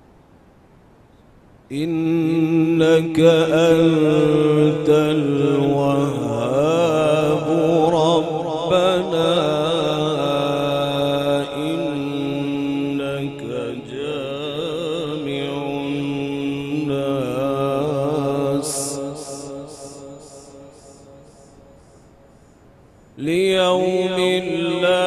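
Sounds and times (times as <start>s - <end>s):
man chanting recitation over pa: 1.7s - 21.5s, 23.2s - 25.0s.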